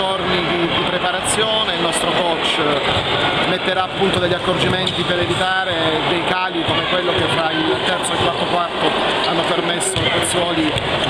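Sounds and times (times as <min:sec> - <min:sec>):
man speaking: 0:00.0 - 0:02.9, 0:03.5 - 0:10.8
background hubbub: 0:00.0 - 0:11.0.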